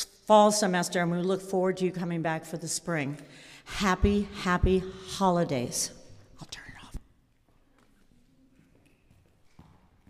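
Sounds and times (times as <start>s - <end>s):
faint whispered voice: 6.4s - 9.0s.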